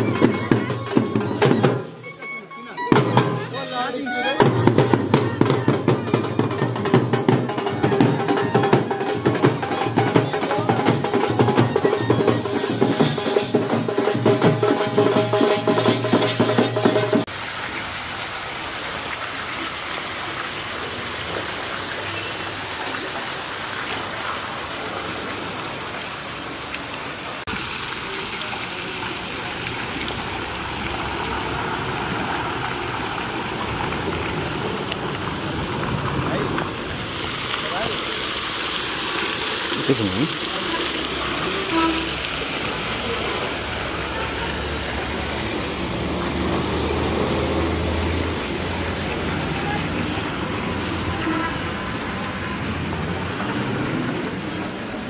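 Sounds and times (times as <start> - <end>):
fountain water splashing into pool: 0.0 - 2.1, 3.0 - 55.0
faint voices: 48.9 - 54.5.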